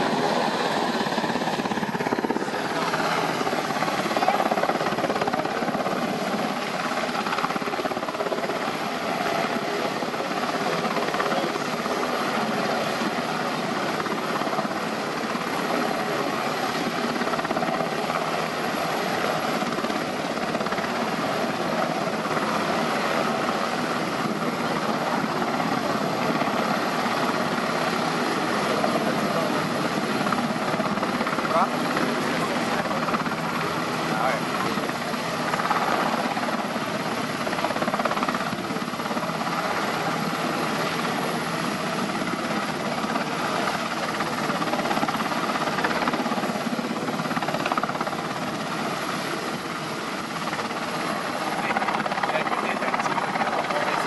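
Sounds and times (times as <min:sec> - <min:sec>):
helicopter hovering: 0:00.0 - 0:54.0.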